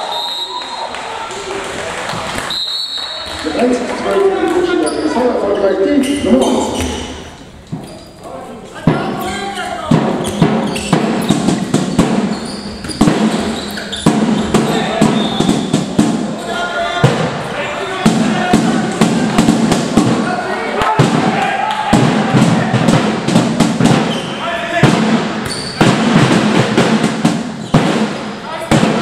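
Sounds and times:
ball bouncing on hall floor: 6.0s - 8.1s, 8.8s - 16.4s, 18.1s - 29.0s.

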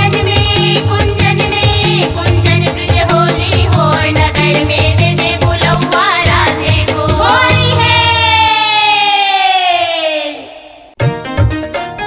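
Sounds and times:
drums and bass: 0.0s - 8.5s.

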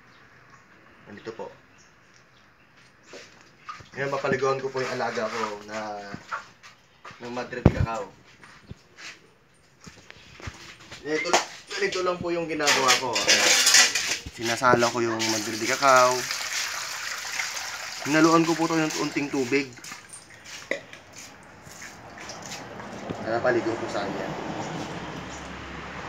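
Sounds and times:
wet leaves pressed in metal strainer: 12.6s - 16.4s.

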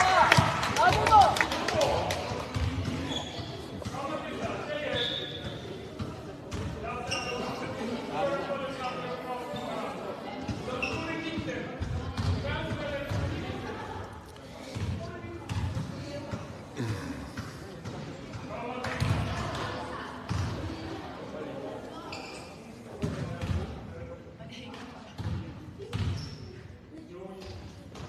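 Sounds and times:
echoing voices in a hall: 0.0s - 28.0s.

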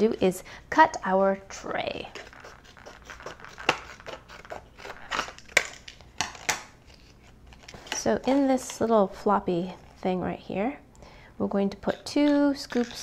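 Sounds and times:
plastic rustling: 2.1s - 9.0s.

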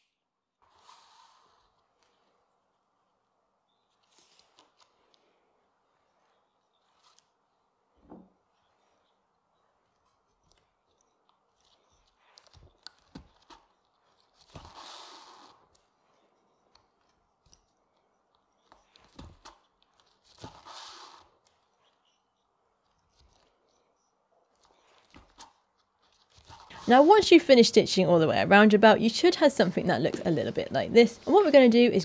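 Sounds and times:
thread pulled through leather: 6.1s - 7.6s, 9.9s - 16.0s
needle clicking through leather: 9.9s - 16.0s, 24.5s - 27.1s.

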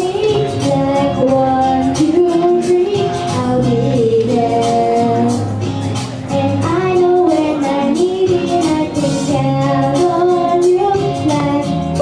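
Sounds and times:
girl singing into microphone: 0.0s - 5.6s, 6.3s - 12.0s
backing track music: 0.0s - 12.0s.

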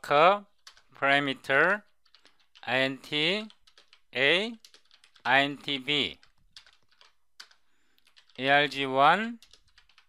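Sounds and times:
faint keyboard keystrokes: 0.5s - 1.0s, 1.8s - 2.7s, 3.4s - 5.3s, 6.2s - 8.4s, 9.4s - 10.0s.

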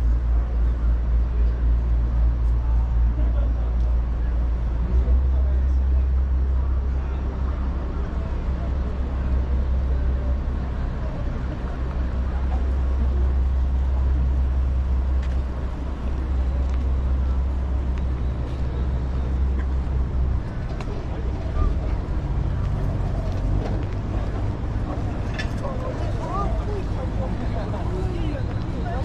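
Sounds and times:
low traffic rumble: 0.0s - 29.0s
people talking: 0.0s - 29.0s.

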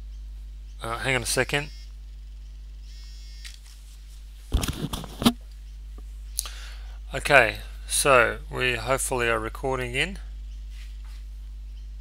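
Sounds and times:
electrical mains hum: 0.0s - 12.0s
rustling noise: 3.6s - 5.5s, 10.6s - 11.5s.

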